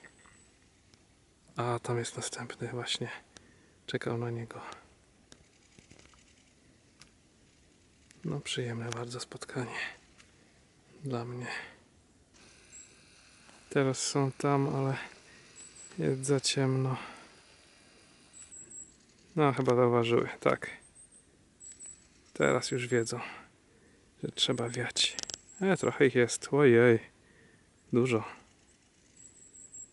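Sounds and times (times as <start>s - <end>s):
faint ticks: 0.0s - 1.6s, 4.6s - 9.1s, 12.3s - 13.8s, 14.4s - 16.1s, 17.0s - 22.4s, 24.6s - 25.6s.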